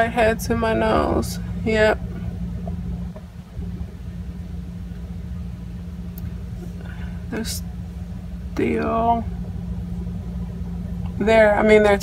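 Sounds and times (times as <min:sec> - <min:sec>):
low rumble: 0:00.0 - 0:12.0
steady low hum: 0:00.0 - 0:12.0.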